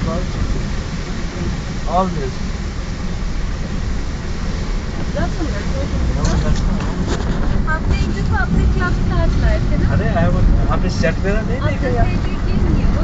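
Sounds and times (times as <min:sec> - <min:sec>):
vehicle driving rumble: 0:00.0 - 0:13.0
indistinct voices: 0:07.6 - 0:13.0.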